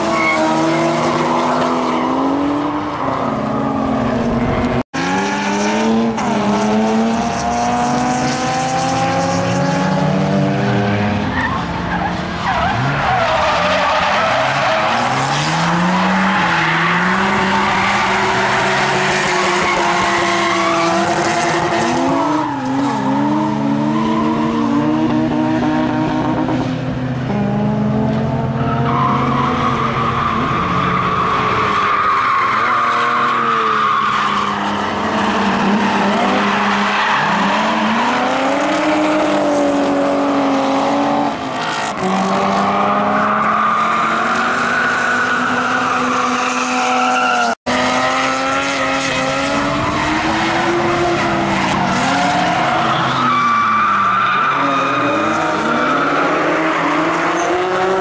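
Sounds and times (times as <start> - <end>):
car engines revving: 0.0 - 58.0.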